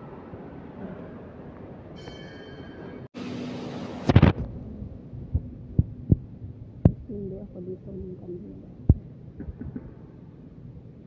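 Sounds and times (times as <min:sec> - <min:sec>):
dull low thumps: 0:04.9 - 0:10.0.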